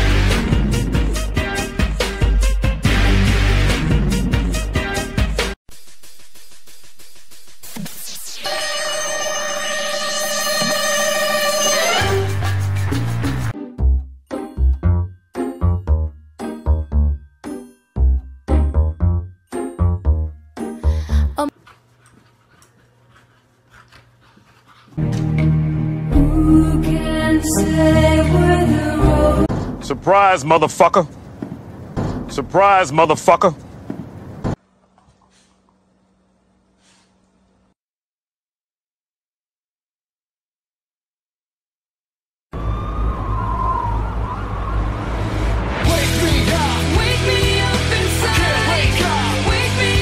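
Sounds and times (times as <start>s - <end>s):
burst of music: 7.7s - 13.6s
wavering wailing tone: 8.3s - 12.4s.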